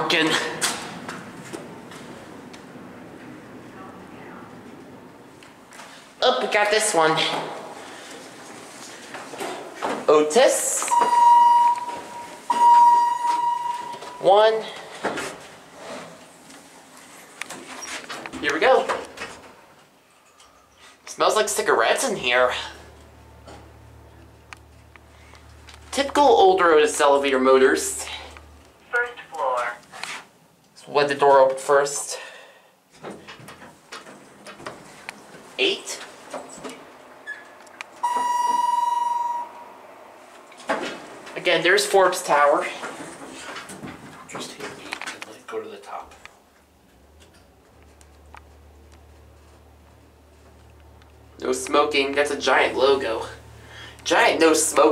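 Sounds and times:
elevator chime: 10.9 - 14.8, 38.0 - 39.8.

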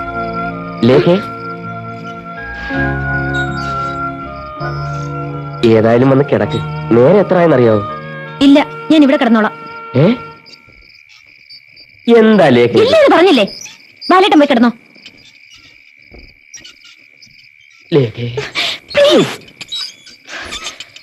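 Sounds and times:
crickets chirring: 0.0 - 21.0
voices speaking: 0.7 - 4.0, 4.8 - 15.8, 17.8 - 21.0.

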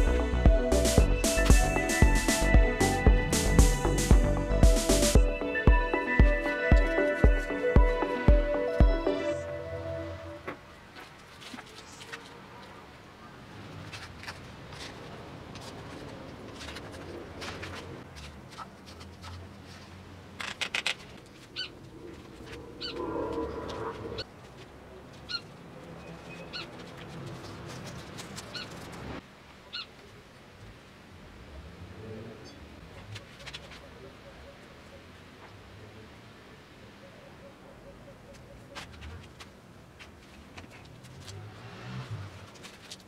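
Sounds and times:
rustle: 10.6 - 37.4, 38.3 - 43.0
straps clicking and rustling: 13.8 - 22.7, 26.2 - 29.2, 42.3 - 43.0
webbing rubbing rumble: 21.7 - 24.3
bird chirping: 22.6 - 24.2, 25.3 - 26.8.

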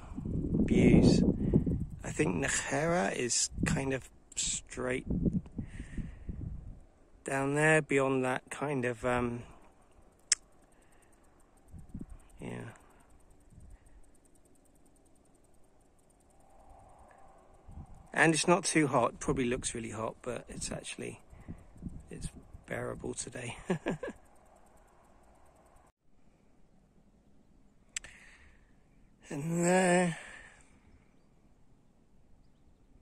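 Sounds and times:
faint outdoor background noise: 0.0 - 33.0
faint rapid high ticking: 9.3 - 25.9
sharp high-pitched click: 10.2 - 10.6, 27.9 - 28.2
short click: 28.0 - 28.2.

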